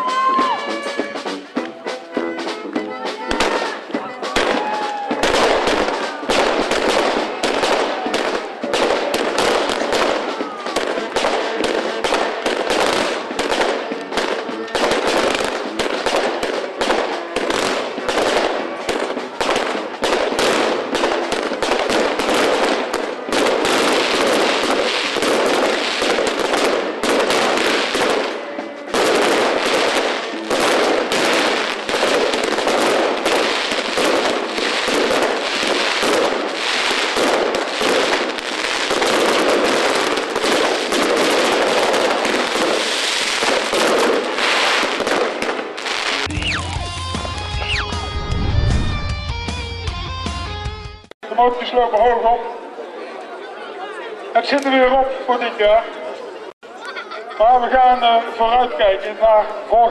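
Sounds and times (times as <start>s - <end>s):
fireworks crackling and popping: 0.0s - 49.3s.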